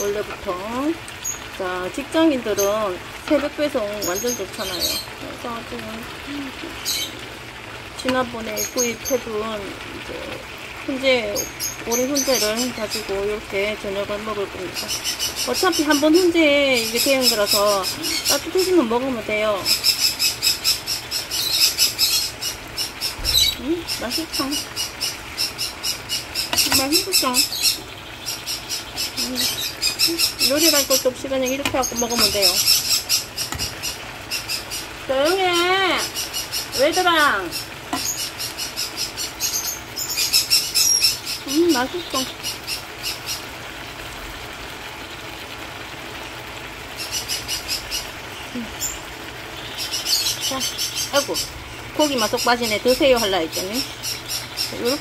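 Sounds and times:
parrots chirping: 1.2 - 1.6, 3.9 - 5.2, 6.2 - 7.4, 11.2 - 13.4, 14.1 - 43.6, 47.0 - 55.0.

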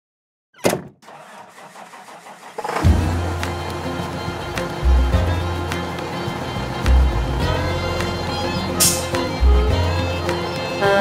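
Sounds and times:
sharp hit: 2.8 - 3.4, 8.8 - 9.3
loud steady low drone: 2.8 - 11.0
music: 2.8 - 11.0.

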